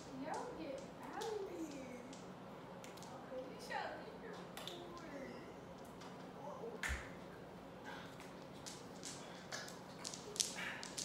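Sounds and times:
sharp hand snap: 6.8 - 7.1.

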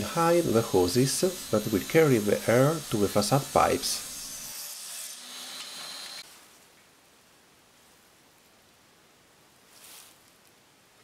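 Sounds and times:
hissing rub of hand-worked wood: 0.0 - 4.2.

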